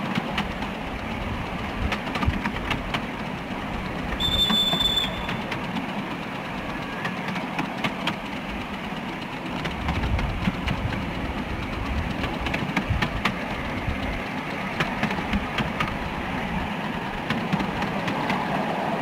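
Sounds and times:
train running rumble: 0.0s - 19.0s.

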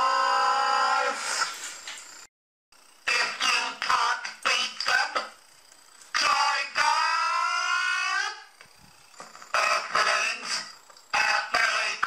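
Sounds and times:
robotic processed voice singing: 6.1s - 8.5s, 9.6s - 12.0s.

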